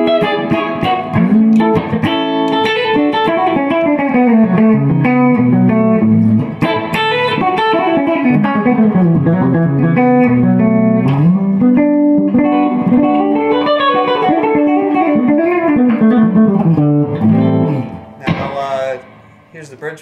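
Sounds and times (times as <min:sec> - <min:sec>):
electric guitar melody: 0:00.0 - 0:19.6.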